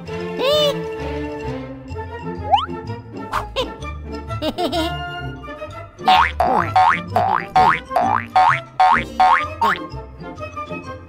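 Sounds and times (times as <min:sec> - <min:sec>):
children's background music: 0:00.0 - 0:11.0
rising boing-like tones: 0:06.1 - 0:09.4.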